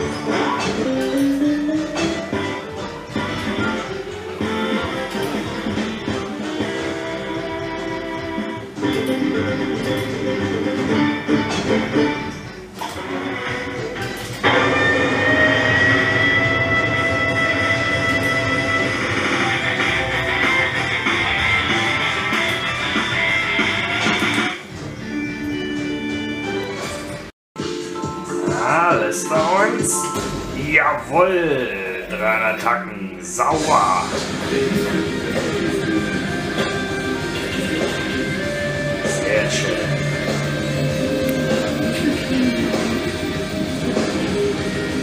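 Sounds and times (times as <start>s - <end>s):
slot machine game music: 0.0s - 45.0s.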